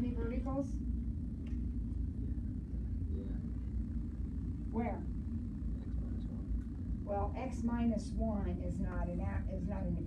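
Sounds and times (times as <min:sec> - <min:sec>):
classroom background rumble: 0:00.0 - 0:10.0.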